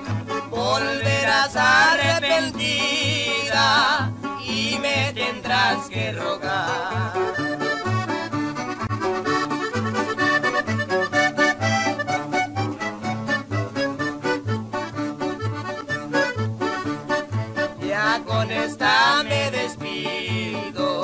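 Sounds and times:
bass line: 0:00.0 - 0:21.0
button accordion melody: 0:00.0 - 0:21.0
strummed guitar: 0:00.0 - 0:21.0.

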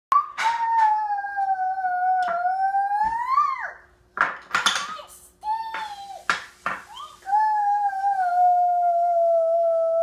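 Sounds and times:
wooden pieces knocking on glass: 0:04.2 - 0:05.0
toddler high-pitched vocalizing: 0:06.9 - 0:10.0.

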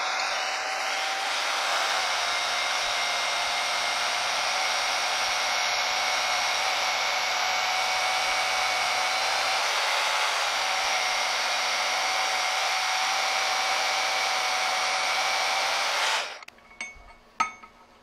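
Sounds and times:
band saw whining: 0:00.0 - 0:16.5.

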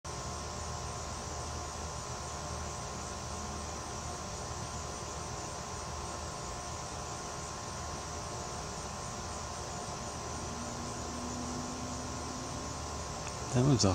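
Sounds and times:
insects trilling: 0:00.1 - 0:13.9
low steady hum: 0:00.1 - 0:13.9.

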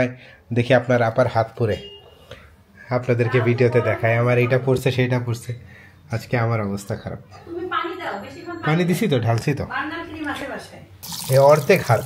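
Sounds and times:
tap water running onto hand: 0:11.0 - 0:12.0
person talking: 0:11.1 - 0:12.0.

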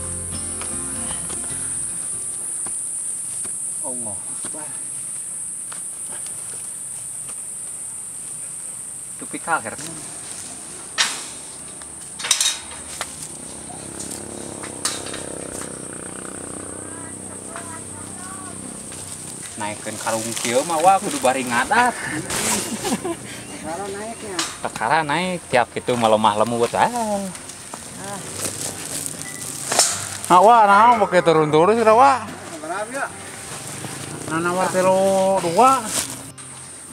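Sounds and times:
insects chirring: 0:00.0 - 0:36.9
sharp knocks and clanks: 0:11.0 - 0:12.9
plastic sack rustling: 0:18.6 - 0:23.1, 0:25.9 - 0:30.6, 0:32.3 - 0:36.4.

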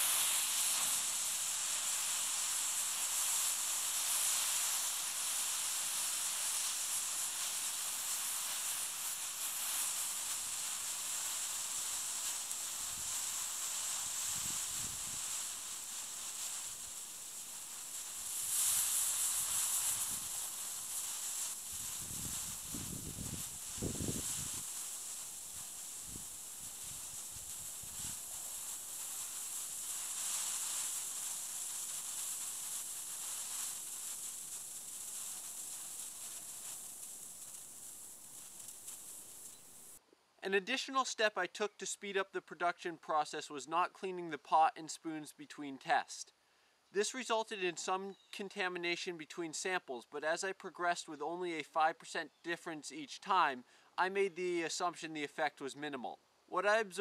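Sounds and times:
smoke mixture burning with hiss: 0:00.0 - 0:57.0.

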